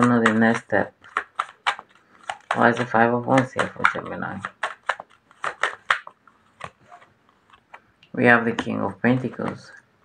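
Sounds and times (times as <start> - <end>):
cards snapping and clicking: 0.0 - 7.8.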